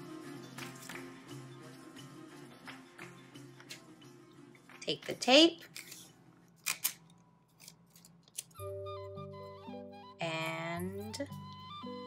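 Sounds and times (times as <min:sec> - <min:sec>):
background music with held notes: 0:00.0 - 0:05.3, 0:08.4 - 0:12.0
tape pulled from dispenser: 0:05.7 - 0:07.0.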